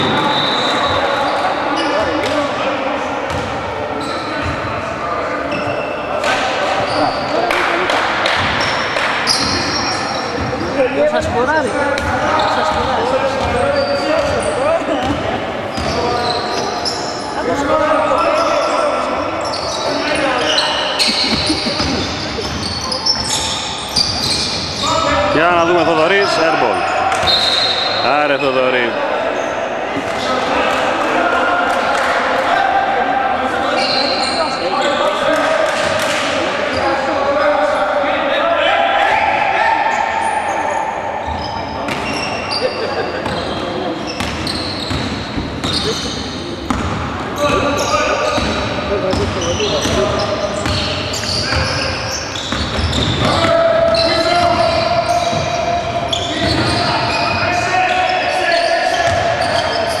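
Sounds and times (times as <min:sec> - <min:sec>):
voices and shouts: 0:03.9 - 0:44.7, 0:47.3 - 1:00.0.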